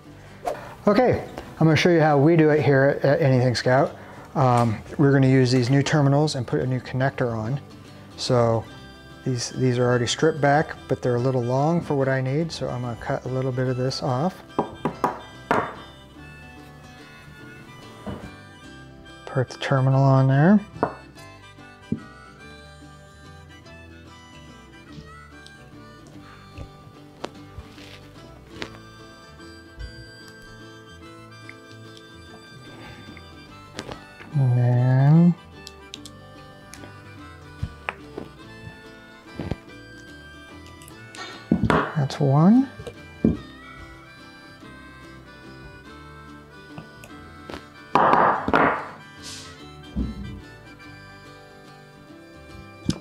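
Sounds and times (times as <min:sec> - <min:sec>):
soft background music: 0:00.0 - 0:53.0
crimping pliers knock: 0:14.6 - 0:15.8.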